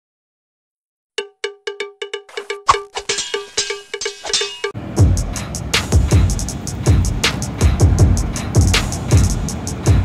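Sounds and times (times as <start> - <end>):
percussion: 1.2 - 10.0.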